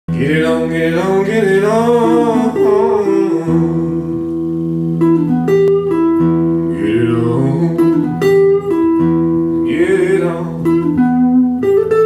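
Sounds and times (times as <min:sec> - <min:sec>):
electric guitar blues riff: 0:00.1 - 0:12.0.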